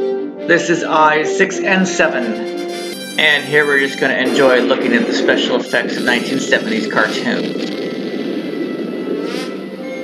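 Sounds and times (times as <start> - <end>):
cartoon music: 0.4 - 8.0
low rushing starship effect: 3.2 - 10.0
sweeping whoosh: 3.2 - 10.0.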